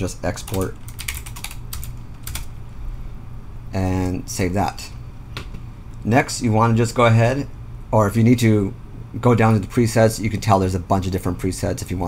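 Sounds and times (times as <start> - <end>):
low steady hum: 0.0 - 12.0
computer keyboard keys clicking: 0.4 - 2.5.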